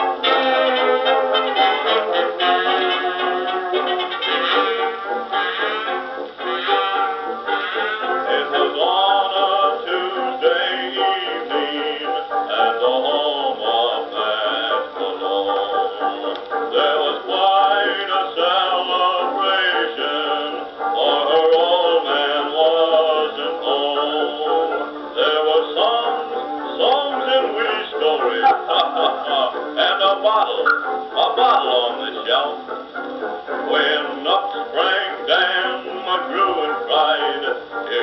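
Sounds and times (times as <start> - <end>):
dance orchestra on old record: 0.0 - 38.0.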